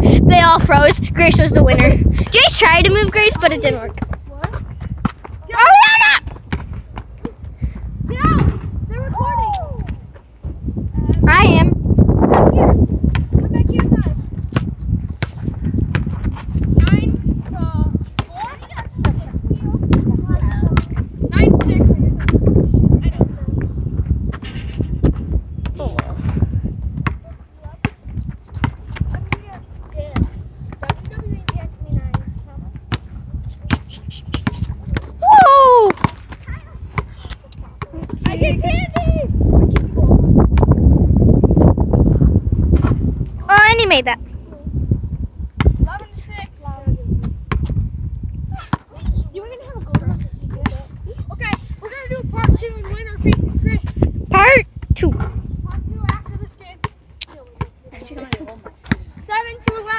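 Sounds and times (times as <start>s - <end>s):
basketball bouncing on asphalt: 2.0s - 8.9s, 12.7s - 24.2s, 25.0s - 35.2s, 35.9s - 41.0s, 42.3s - 48.0s, 48.6s - 54.2s, 54.8s - 59.9s
child shouting: 5.4s - 6.3s, 8.1s - 9.9s, 35.2s - 36.8s, 43.5s - 44.2s
young person crying out: 35.2s - 36.0s.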